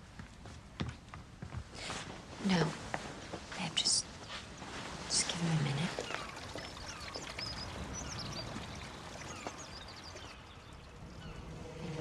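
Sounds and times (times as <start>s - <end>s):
steady background hiss: 0.0s - 7.0s
small birds chirping: 3.5s - 12.0s.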